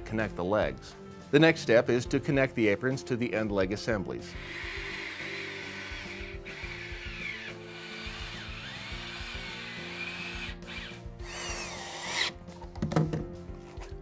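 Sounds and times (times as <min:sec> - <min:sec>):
background music: 0:00.0 - 0:14.0
cordless drill driving screws: 0:04.4 - 0:12.4.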